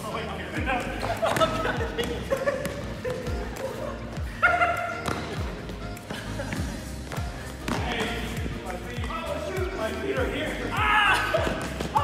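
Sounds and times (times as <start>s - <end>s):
background music with drum beat: 0.6s - 12.0s.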